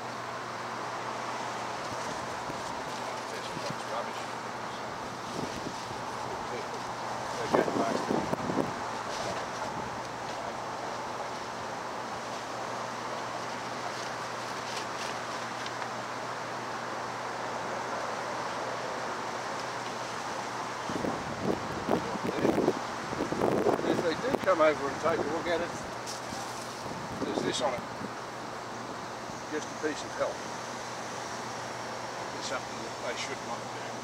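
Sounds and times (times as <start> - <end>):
wind hiss on microphone: 1.7 - 4.2, 4.8 - 15.8, 19.1 - 30.2.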